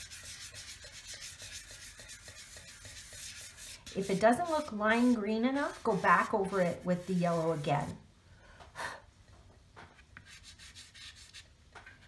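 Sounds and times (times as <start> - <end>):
chalk pastel scratching on paper: 0.0 - 8.0, 10.2 - 11.5.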